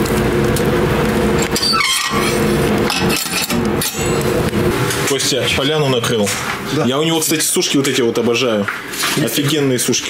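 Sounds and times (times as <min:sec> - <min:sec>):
steady low hum: 0:00.0 - 0:09.0.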